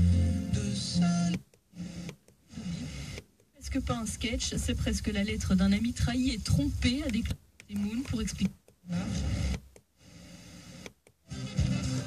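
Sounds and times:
radio station audio: 0:00.0 - 0:12.0
radio static hiss: 0:00.5 - 0:12.0.

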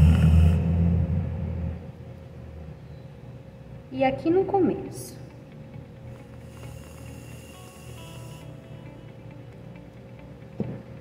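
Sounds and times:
low rumble: 0:00.0 - 0:02.8
whipped cream can hissing: 0:06.2 - 0:08.6.

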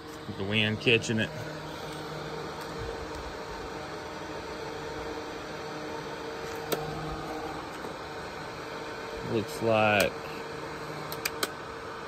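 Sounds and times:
faint steady hum: 0:00.0 - 0:12.0
fan whirring air: 0:00.0 - 0:12.0.

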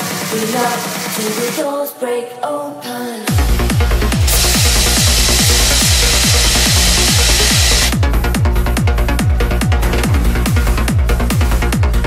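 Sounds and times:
trance music with kick drum: 0:00.0 - 0:01.6, 0:03.3 - 0:12.0
hiss of gas jets blasting: 0:03.6 - 0:08.0.

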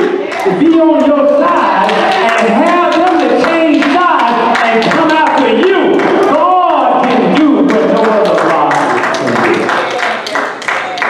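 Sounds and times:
man preaching in sing-song voice: 0:00.0 - 0:09.7.

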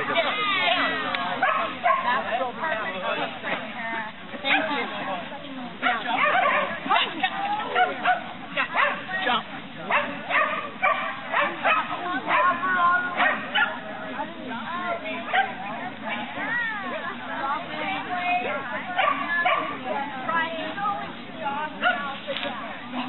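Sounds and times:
dog barking and yipping: 0:05.9 - 0:06.8, 0:07.8 - 0:09.0, 0:09.9 - 0:12.6.

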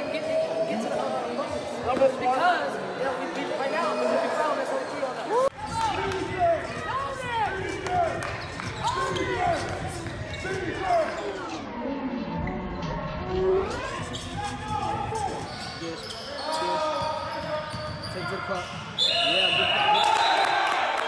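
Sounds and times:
sneakers squeaking: 0:04.6 - 0:11.7, 0:13.6 - 0:19.8.

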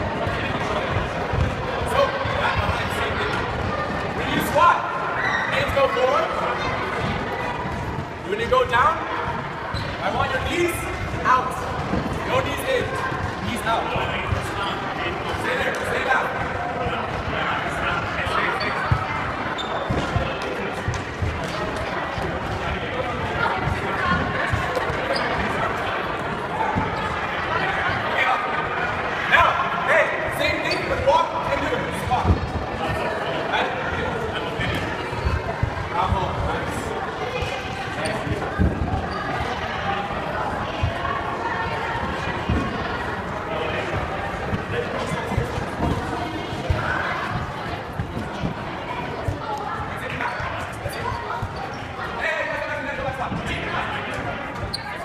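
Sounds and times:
indistinct chatter: 0:00.0 - 0:55.0
voices echoing in a hall: 0:00.0 - 0:55.0.

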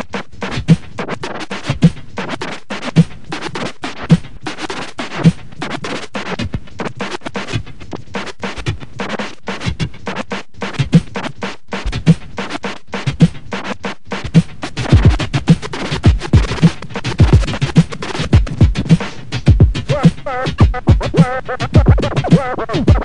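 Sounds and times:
turntable scratching: 0:00.0 - 0:23.0.

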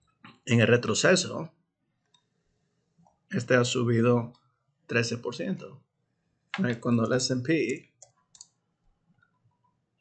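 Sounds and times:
computer keyboard and mouse clicks: 0:07.6 - 0:08.6.

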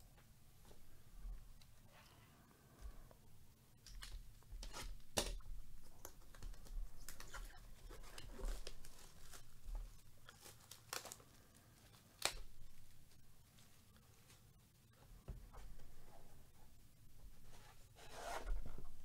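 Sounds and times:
packaging crinkling: 0:06.0 - 0:13.7
packaging ripping: 0:10.3 - 0:11.4.

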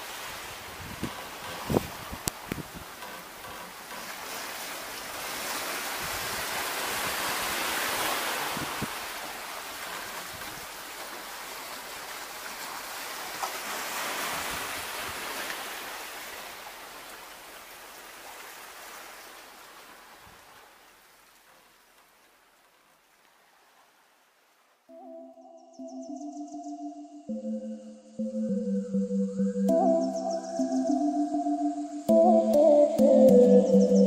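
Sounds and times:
sea washing onto rocky shore: 0:03.8 - 0:20.6.

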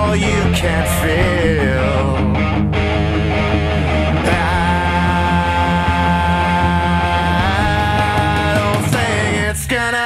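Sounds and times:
rock song with electric guitar: 0:00.0 - 0:09.7.

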